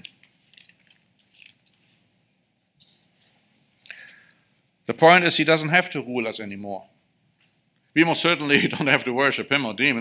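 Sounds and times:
paper pages rustling: 0.0s - 2.1s.

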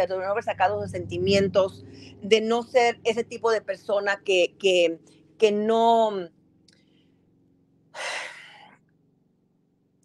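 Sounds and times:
woman breathing: 1.8s - 2.2s, 8.0s - 8.8s.

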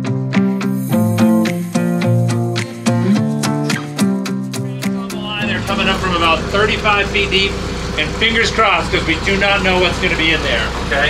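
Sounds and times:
boat engine rumbling: 4.6s - 11.0s
man talking: 4.6s - 11.0s.

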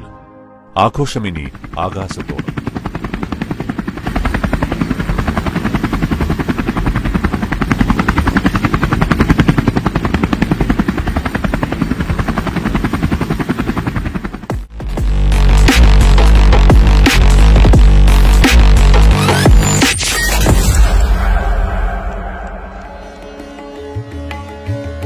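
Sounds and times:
helicopter rotor blades chopping: 1.2s - 23.6s.

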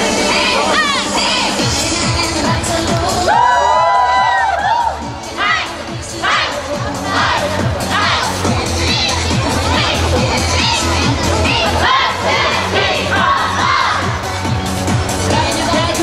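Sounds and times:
dance music with heavy bass: 0.0s - 16.0s
high voices shouting and cheering: 0.0s - 16.0s.

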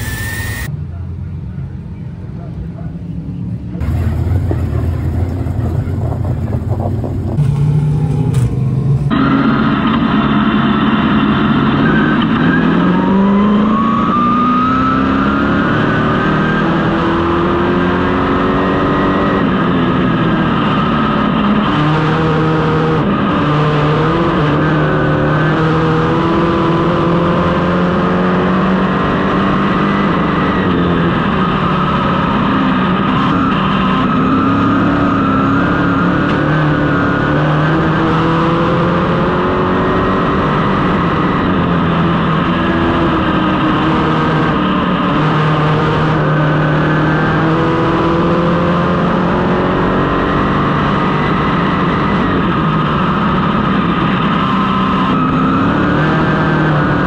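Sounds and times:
race car engine revving: 3.8s - 57.0s.

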